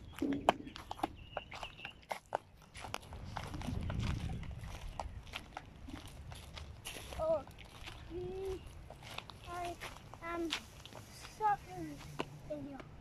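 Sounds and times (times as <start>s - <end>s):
footsteps on gravel: 0.0s - 13.0s.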